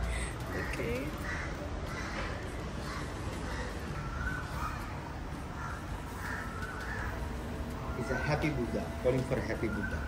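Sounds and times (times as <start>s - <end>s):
bird calls: 0.6s - 8.5s, 9.4s - 10.0s.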